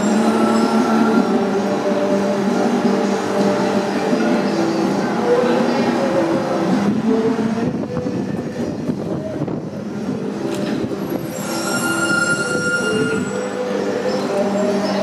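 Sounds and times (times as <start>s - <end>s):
high-pitched metallic squeal: 0.0s - 1.5s, 11.1s - 14.2s
street traffic noise: 0.0s - 15.0s.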